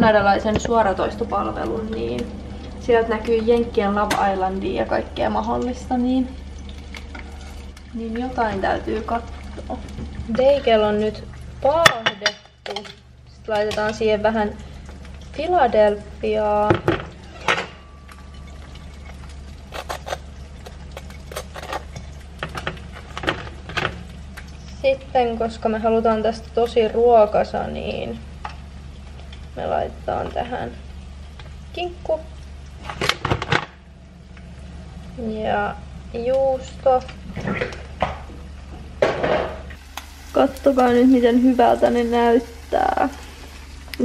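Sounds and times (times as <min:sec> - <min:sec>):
steady low hum: 0:00.0 - 0:44.0
dishware clattering: 0:16.8 - 0:19.0
knife scraping on bagel: 0:19.7 - 0:20.3, 0:21.1 - 0:21.9.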